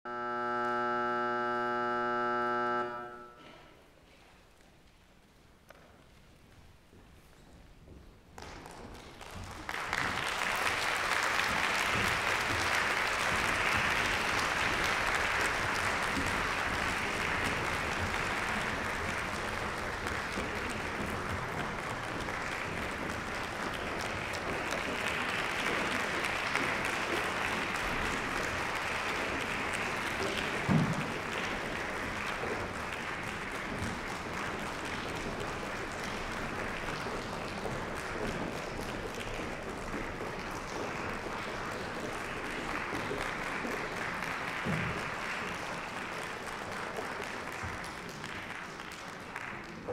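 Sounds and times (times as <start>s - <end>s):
audience applauding: 8.4s - 49.9s.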